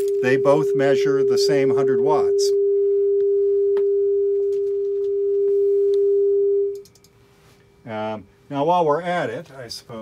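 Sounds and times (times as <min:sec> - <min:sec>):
sine-wave test tone: 0:00.0 - 0:06.9.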